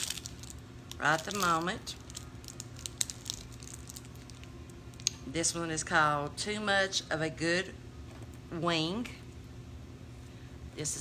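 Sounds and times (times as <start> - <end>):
plastic packaging crinkling: 0.0 - 5.2
faint steady hum: 0.0 - 11.0.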